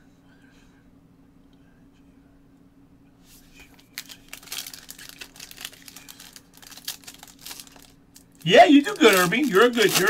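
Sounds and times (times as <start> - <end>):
faint steady hum: 0.0 - 10.0
plastic wrapper crinkling: 3.8 - 10.0.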